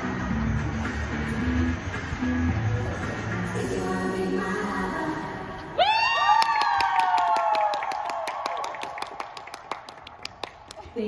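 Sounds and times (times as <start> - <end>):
people whooping: 5.8 - 9.3
people clapping: 6.1 - 11.0.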